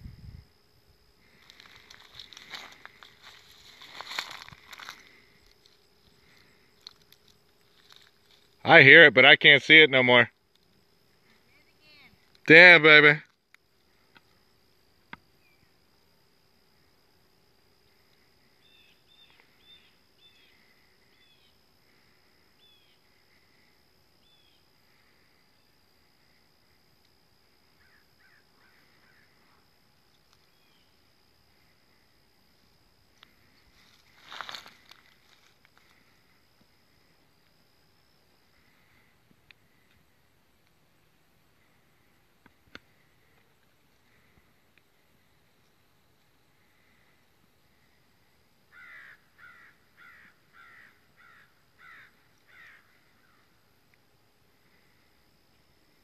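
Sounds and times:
faint steady high tone: 0.0s - 48.4s
faint bird chirps: 15.3s - 15.8s, 18.0s - 26.5s, 27.7s - 29.6s, 30.4s - 31.8s.

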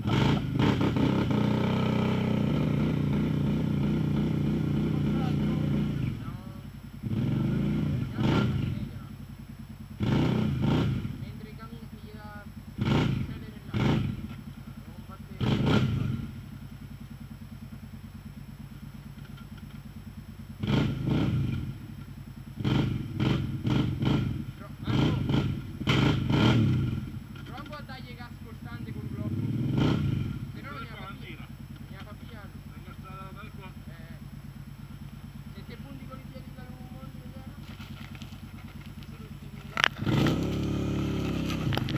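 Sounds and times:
quad bike engine revving: 0.0s - 9.2s, 9.8s - 17.2s, 18.6s - 41.9s.

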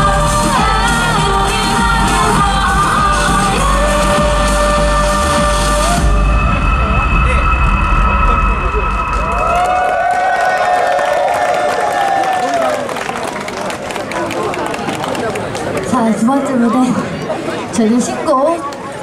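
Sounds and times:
live pop band over pa: 0.0s - 10.6s
crowd whooping and cheering: 8.5s - 13.8s.

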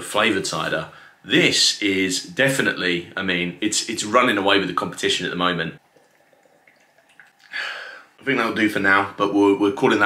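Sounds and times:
breathy exhale: 7.5s - 8.2s.

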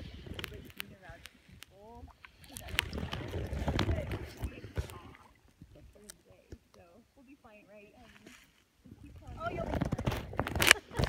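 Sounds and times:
paddle sloshing through water: 0.0s - 6.9s.

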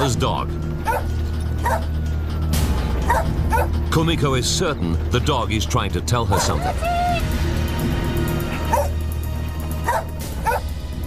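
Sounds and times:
background music drone: 0.0s - 11.0s
dog barking: 0.9s - 1.9s, 3.1s - 3.7s, 6.3s - 7.0s, 8.7s - 9.0s, 9.8s - 10.7s.

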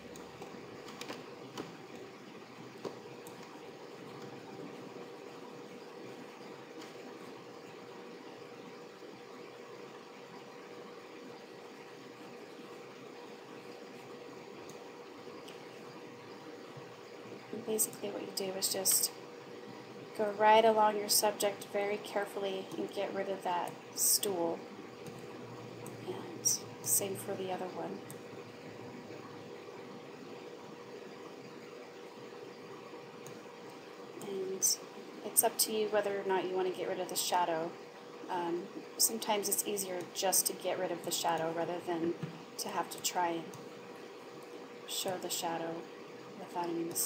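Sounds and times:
background hiss: 0.0s - 47.0s
faint constant hum: 0.0s - 47.0s.

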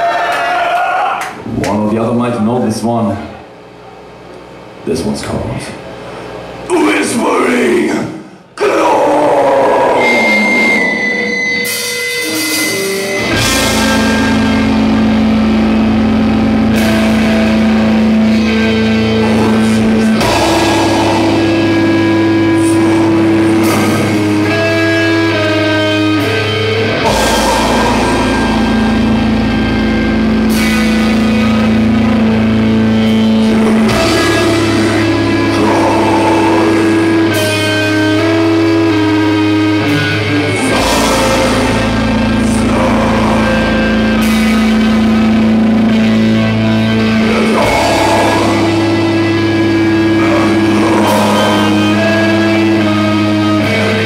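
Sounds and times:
live heavy metal band: 6.4s - 54.0s.

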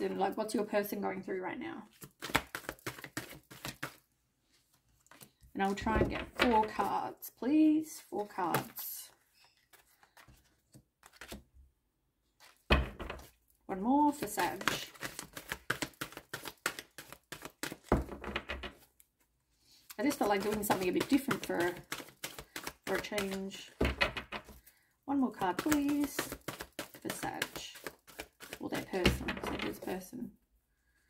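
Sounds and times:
cards shuffling: 1.9s - 4.0s, 4.9s - 5.8s, 8.4s - 11.5s, 14.1s - 18.1s, 20.0s - 23.8s, 25.4s - 30.0s.

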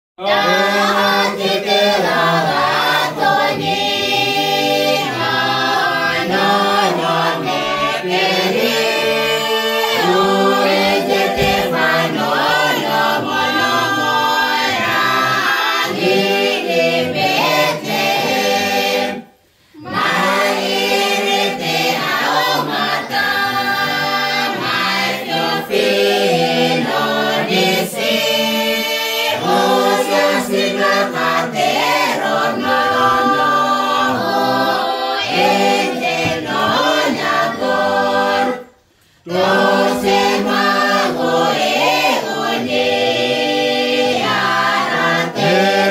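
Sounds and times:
group singing a carol unaccompanied: 0.2s - 45.9s.

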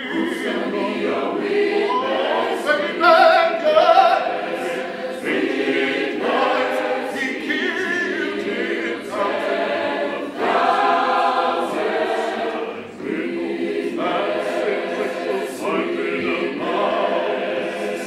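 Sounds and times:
choir singing a cappella: 0.0s - 18.0s.

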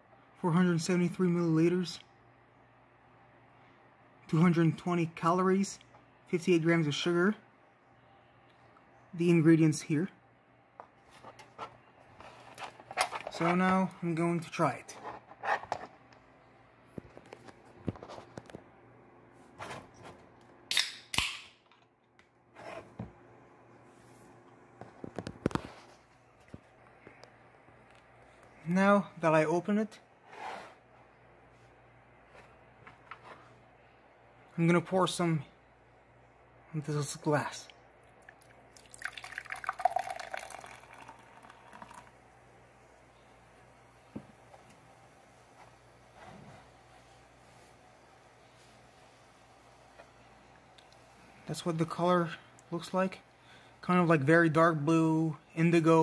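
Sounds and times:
can pull tab cracking: 20.7s - 21.8s
soda pouring and fizzing: 38.2s - 42.2s.

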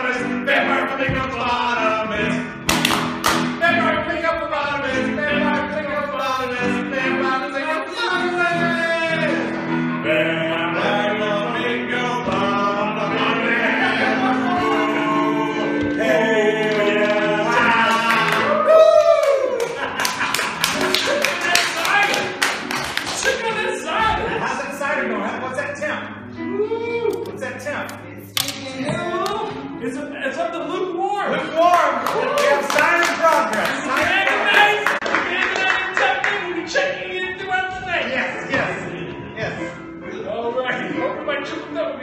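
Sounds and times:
keyboard playing chords: 0.0s - 31.0s.

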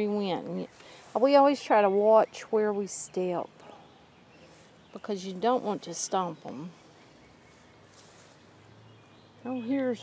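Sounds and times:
soft rustle: 0.0s - 2.3s, 3.7s - 9.3s.

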